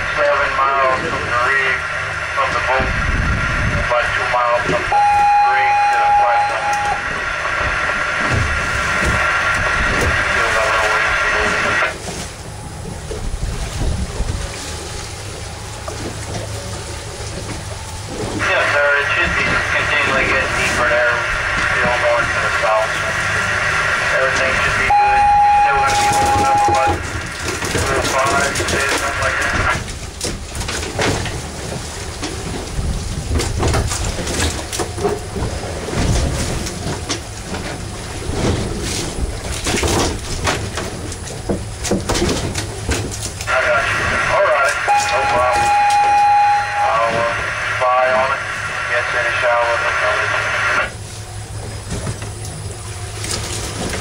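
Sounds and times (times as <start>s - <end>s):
crackly radio voice: 0.0s - 12.0s, 18.4s - 29.8s, 43.4s - 51.0s
wind and water rumble: 0.0s - 54.0s
steady beep: 4.8s - 7.5s, 19.8s - 27.1s, 44.6s - 50.9s.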